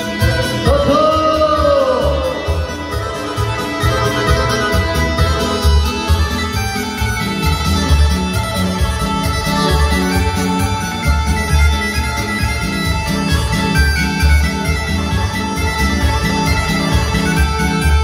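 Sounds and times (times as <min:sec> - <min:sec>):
folk band playing dance tune: 0:00.0 - 0:18.0.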